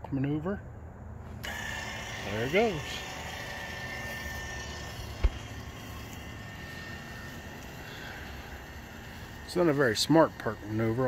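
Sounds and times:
linear actuator motor running: 0:01.4 - 0:11.0.

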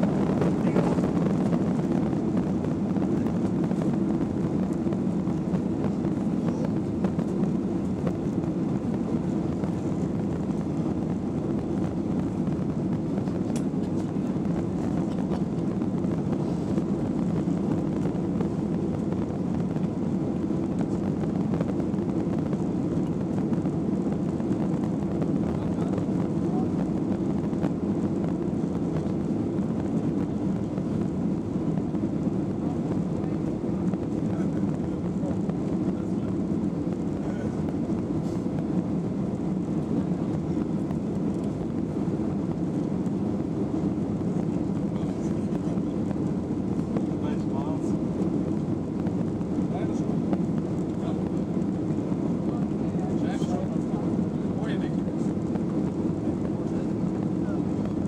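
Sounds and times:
airflow in aircraft cabin: 0:00.0 - 0:58.0
jet engines droning: 0:00.0 - 0:58.0.

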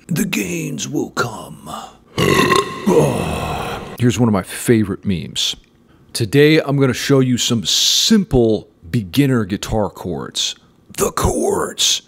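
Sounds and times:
person's rough drawn-out vocal: 0:02.1 - 0:04.0.

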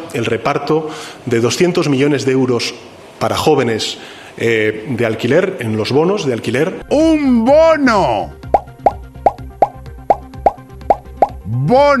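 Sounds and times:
faint background music: 0:03.2 - 0:12.0
cartoon pop bloop: 0:08.5 - 0:11.5.

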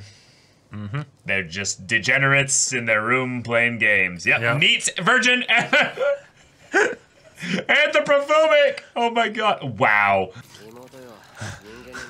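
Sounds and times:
person laughing: 0:00.8 - 0:01.1, 0:05.5 - 0:07.6, 0:11.3 - 0:12.0
person speaking: 0:07.4 - 0:12.0.

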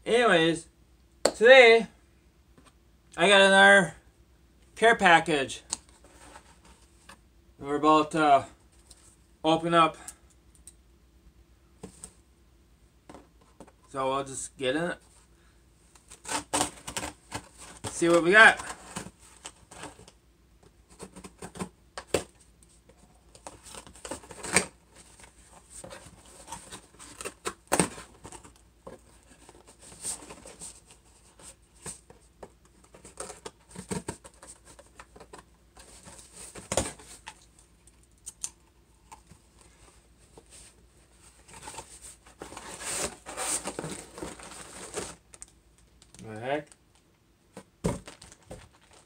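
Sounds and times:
plastic wrapping crinkling: 0:48.0 - 0:49.0.

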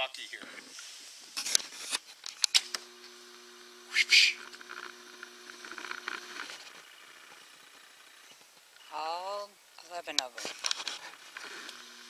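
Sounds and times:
steady low hum: 0:02.6 - 0:09.8, 0:10.5 - 0:12.0.

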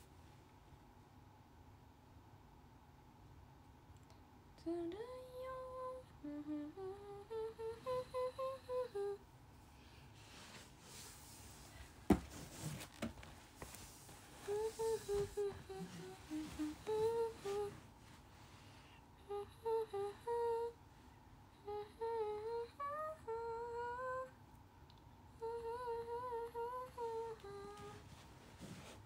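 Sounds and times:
woman humming: 0:04.6 - 0:09.2, 0:14.4 - 0:17.8, 0:19.2 - 0:20.8, 0:21.6 - 0:24.4, 0:25.4 - 0:28.0.

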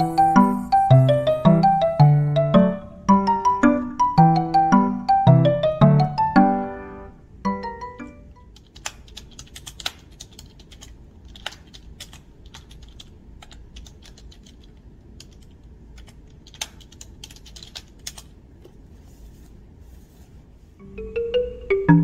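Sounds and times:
computer keyboard typing: 0:08.4 - 0:18.4.

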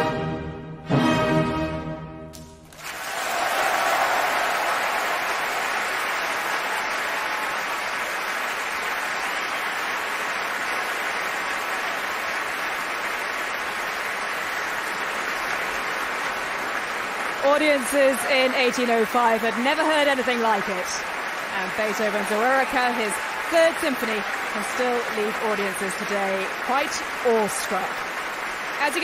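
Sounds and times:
audience applause: 0:02.6 - 0:29.0.

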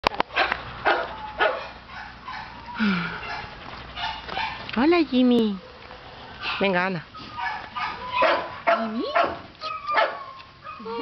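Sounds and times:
dog barking: 0:00.3 - 0:02.6, 0:03.2 - 0:04.6, 0:07.4 - 0:11.0.

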